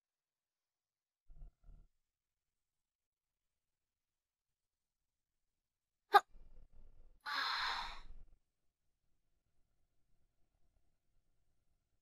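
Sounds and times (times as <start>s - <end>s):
breathy exhale: 7.3s - 8.1s.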